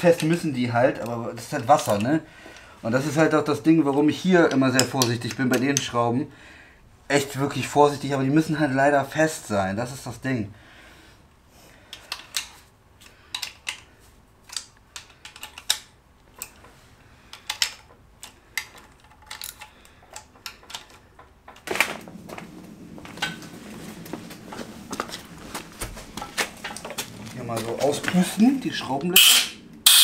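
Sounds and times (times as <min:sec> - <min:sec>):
steady noise: 0:21.7 - 0:30.0
ratchet clicks on metal: 0:29.2 - 0:30.0.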